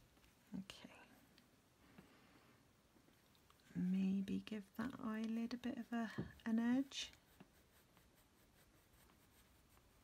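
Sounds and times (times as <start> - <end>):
soft whispered murmur: 0.4 - 1.5.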